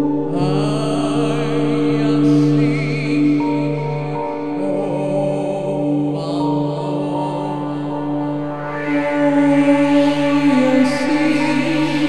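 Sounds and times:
electronic synthesizer drone: 0.0 - 12.0
wordless chant-like voice: 0.0 - 12.0.

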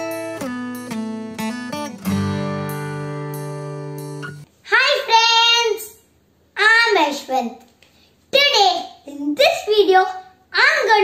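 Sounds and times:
acoustic guitar chord ringing: 0.0 - 4.5
boy calling out: 4.6 - 6.0, 6.6 - 7.6, 8.3 - 11.0.

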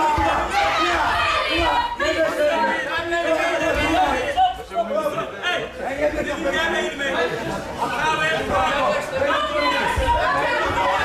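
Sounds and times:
spectators shouting and chattering: 0.0 - 11.0.

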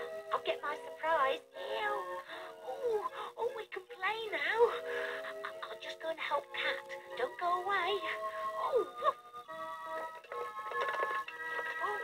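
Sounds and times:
children's television music: 0.0 - 12.0.

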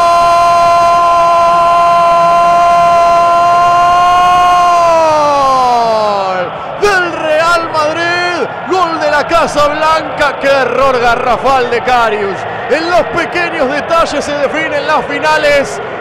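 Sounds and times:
excited shouting: 0.0 - 16.0.

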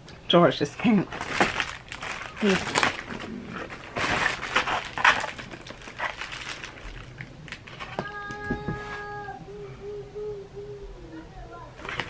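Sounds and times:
plastic package crinkling: 1.1 - 9.0, 11.8 - 12.0
person humming: 7.8 - 11.8.

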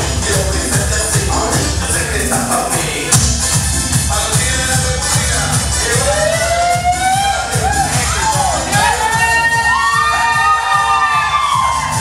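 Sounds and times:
dance music with steady beat: 0.0 - 12.0
people whooping and cheering: 5.9 - 12.0.

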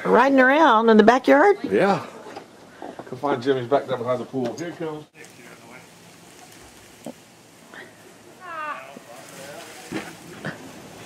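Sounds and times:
faint voices: 4.7 - 11.0.

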